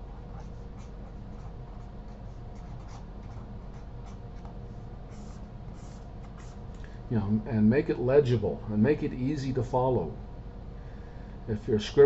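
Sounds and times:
pen scratching on paper: 0.0 - 4.5, 5.1 - 6.6
steady low hum: 0.0 - 12.0.

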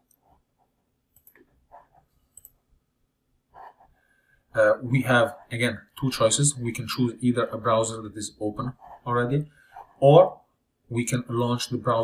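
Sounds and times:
computer mouse clicks: 1.1 - 1.5, 2.3 - 2.6.

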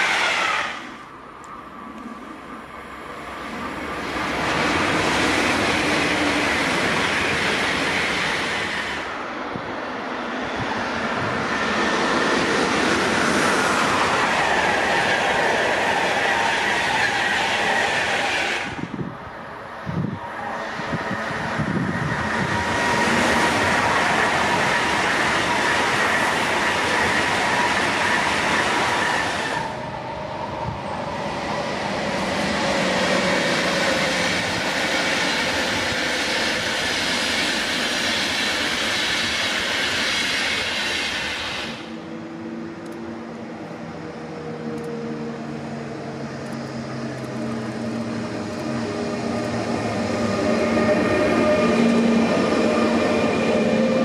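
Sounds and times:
train wheel and rail noise: 0.0 - 54.0.

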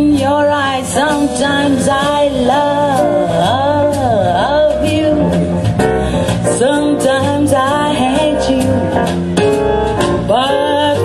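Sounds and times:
woman singing: 0.0 - 9.2, 10.1 - 11.0
electric bass: 0.0 - 11.0
piano: 0.0 - 11.0.

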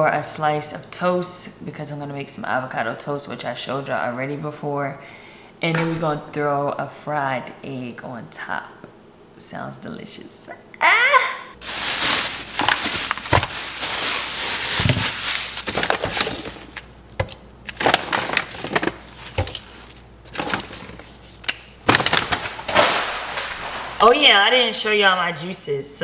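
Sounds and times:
packages knocking on countertop: 11.6 - 19.6
plastic bag rustling and crinkling: 11.6 - 24.1.

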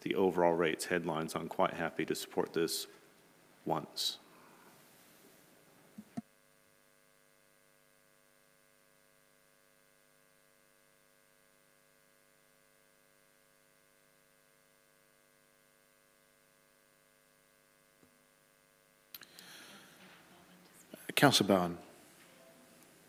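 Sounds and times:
faint electrical hum: 0.0 - 23.0.

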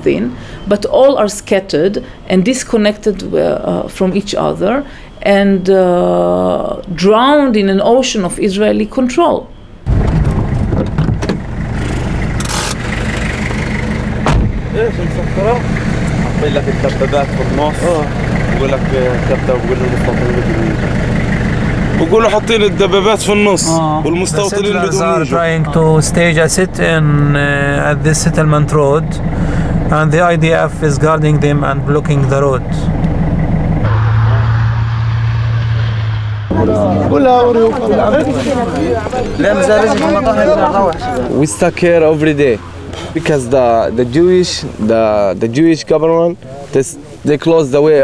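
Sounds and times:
traffic noise: 0.0 - 48.0
car engine humming: 9.6 - 48.0
men talking: 14.6 - 21.2, 21.8 - 33.0, 36.5 - 48.0.

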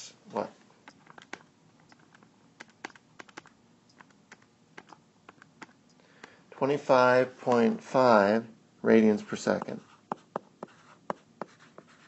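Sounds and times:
calculator keys clicking: 0.9 - 5.8.

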